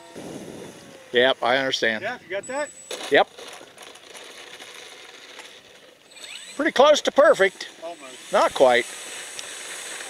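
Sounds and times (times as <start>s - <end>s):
model plane wheels rattling on asphalt: 2.8s - 7.7s.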